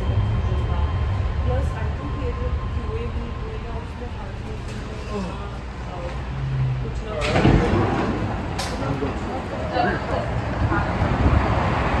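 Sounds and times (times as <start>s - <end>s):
low uneven train rumble: 0.0s - 12.0s
wind buffeting microphone: 7.6s - 12.0s.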